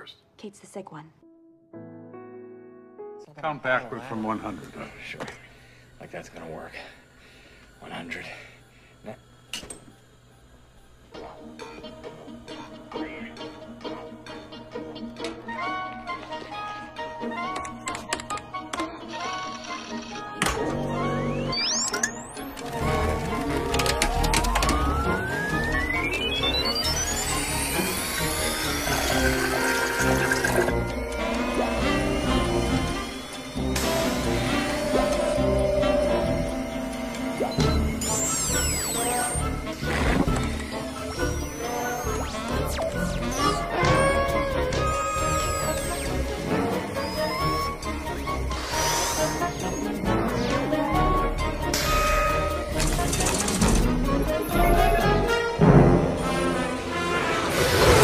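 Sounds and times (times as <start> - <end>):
film soundtrack music: 1.1 - 5.9, 10.2 - 58.0
centrifuge whine rising: 20.7 - 58.0
steady high tone: 20.9 - 53.5.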